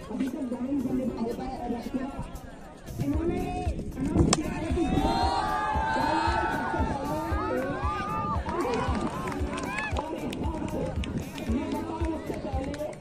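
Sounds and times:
crowd shouting outdoors: 0:04.3 - 0:10.3.

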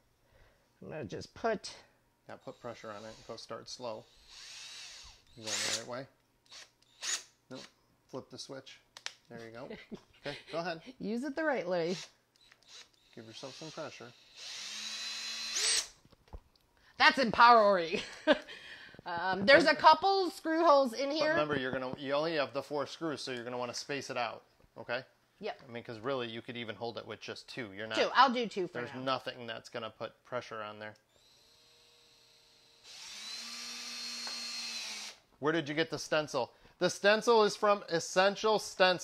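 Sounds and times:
cordless drill whining: 0:02.4 - 0:03.5, 0:04.1 - 0:07.7, 0:11.8 - 0:16.0, 0:31.1 - 0:35.2.

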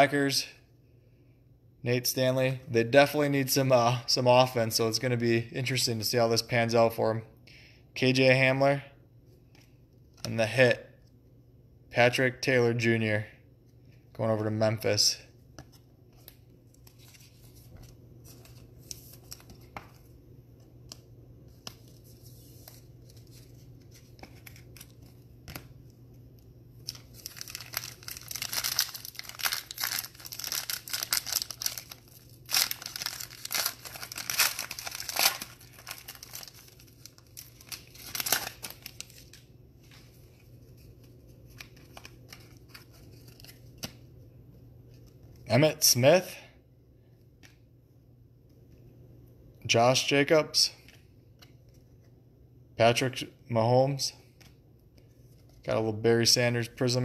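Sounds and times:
foil wrapper crinkling: 0:26.8 - 0:39.4.

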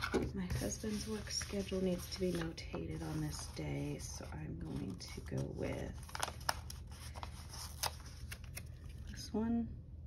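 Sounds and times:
paper sheets shuffled on a desk: 0:00.5 - 0:08.4.

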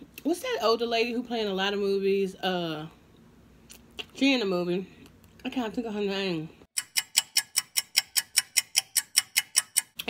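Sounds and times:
clock ticking: 0:06.8 - 0:10.0.

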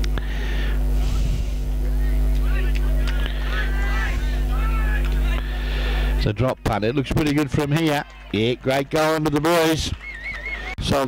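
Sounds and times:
steady low hum: 0:00.0 - 0:11.0
distant spectators calling out: 0:01.8 - 0:11.0.

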